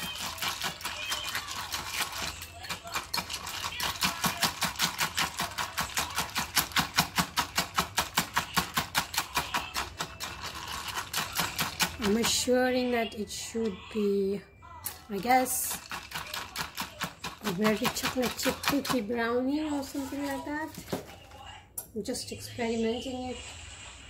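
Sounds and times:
whisk beating eggs in a mug: 0.0 - 13.0, 15.0 - 21.0.

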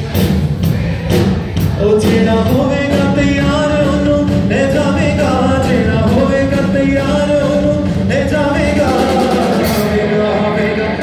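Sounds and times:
worship band playing: 0.0 - 11.0.

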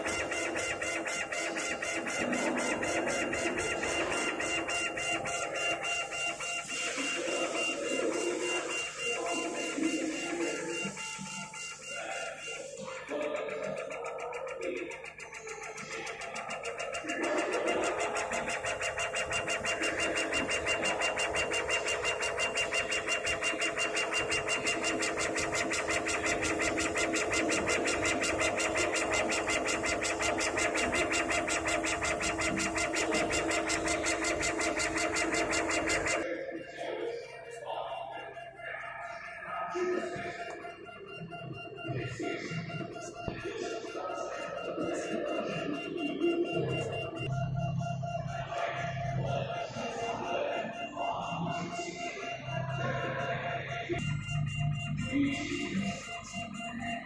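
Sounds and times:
laser cutter gantry whirring: 0.0 - 57.0.

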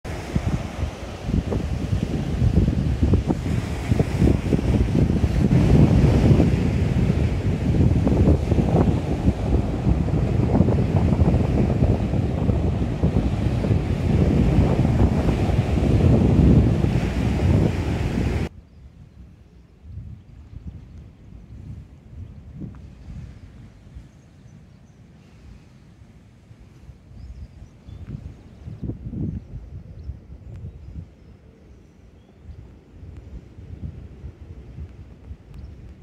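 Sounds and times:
wind buffeting microphone: 0.1 - 24.3, 26.8 - 31.6, 32.3 - 36.0.

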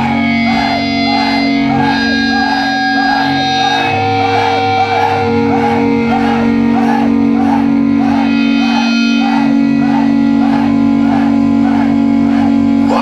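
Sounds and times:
electric guitar sustained note: 0.0 - 13.0
higher wavering guitar figure: 0.0 - 13.0.

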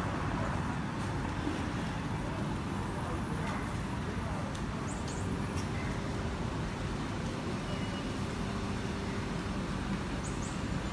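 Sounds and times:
low rumble of road traffic: 0.0 - 10.9.

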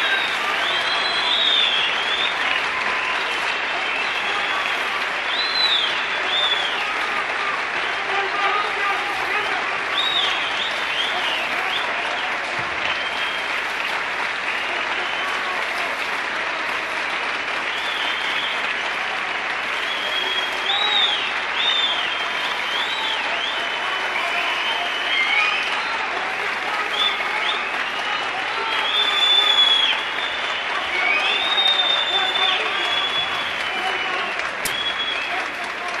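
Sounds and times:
short whistles: 0.0 - 2.5, 5.3 - 6.8, 19.8 - 25.8, 26.9 - 35.4
audience applauding: 0.0 - 36.0
crowd cheering: 0.0 - 36.0.

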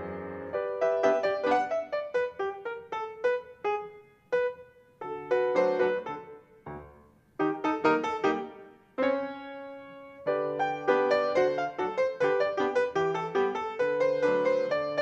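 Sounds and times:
solo piano: 0.0 - 15.0.

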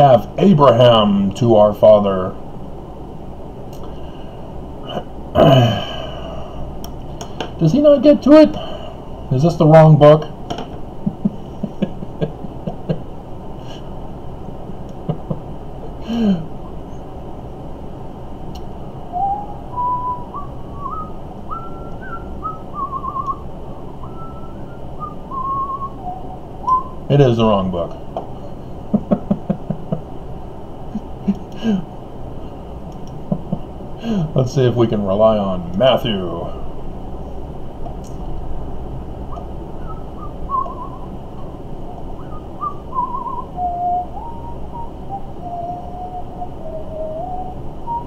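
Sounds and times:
man sighing: 3.9 - 6.7, 8.5 - 9.1, 15.9 - 16.6, 31.0 - 31.9, 34.0 - 34.4
man whistling a tune: 19.1 - 23.4, 24.0 - 27.0, 39.3 - 41.1, 42.2 - 48.0.

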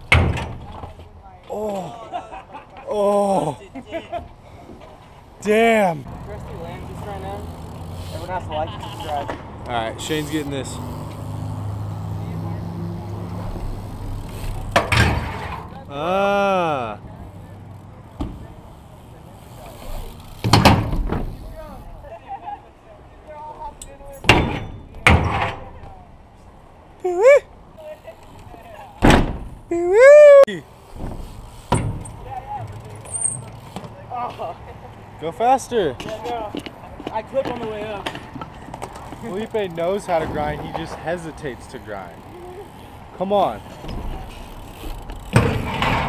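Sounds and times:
bike landing on concrete: 13.4 - 15.8, 18.1 - 18.6, 19.6 - 21.9, 28.4 - 29.6, 30.9 - 34.0, 36.0 - 41.2, 43.7 - 46.0
rider yelling: 15.9 - 17.0, 29.7 - 30.6.

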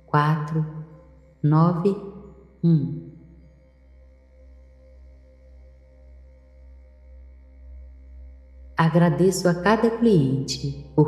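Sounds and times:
soft ambient drone music: 0.0 - 11.0.

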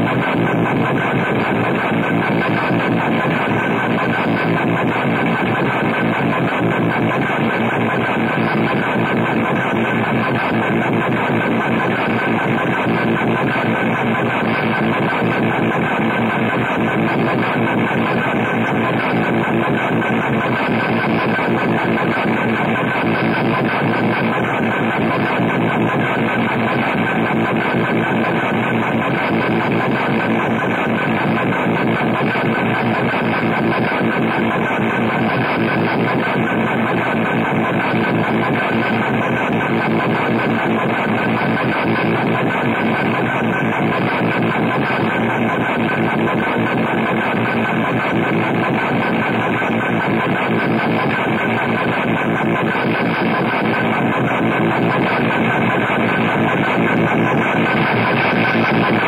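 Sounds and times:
harsh noise wall: 0.0 - 59.0.

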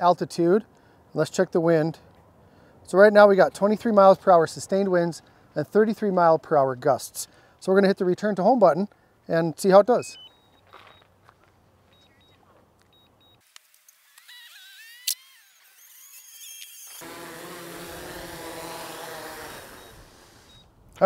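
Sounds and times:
short high beeps: 10.0 - 11.0, 19.8 - 20.7
drone propellers humming: 17.0 - 20.6.

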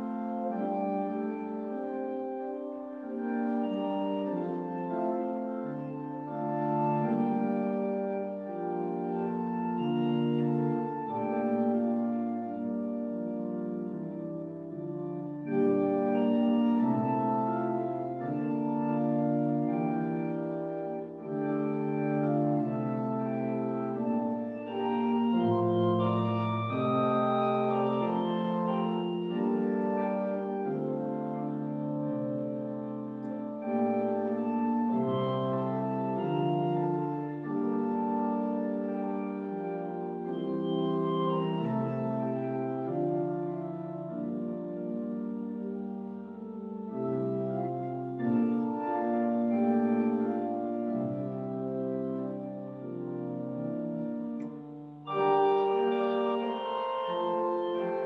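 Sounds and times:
organ playing held chords: 0.0 - 58.0.

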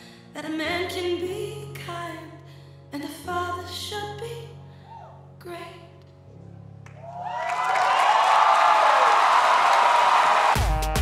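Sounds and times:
studio audience cheering: 6.9 - 11.0.

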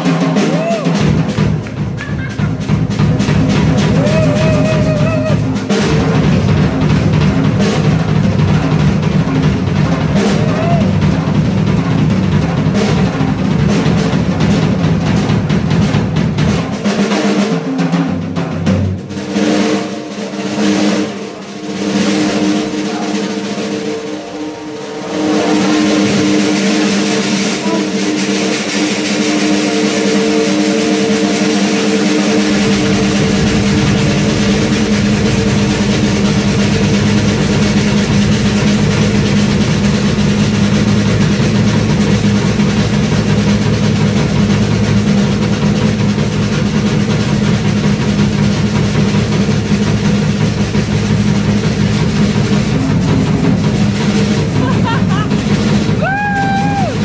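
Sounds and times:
drum kit playing: 0.0 - 57.0.

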